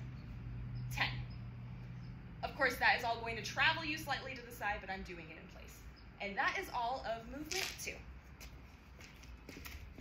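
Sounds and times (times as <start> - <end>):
soft footsteps on asphalt: 6.0 - 10.0.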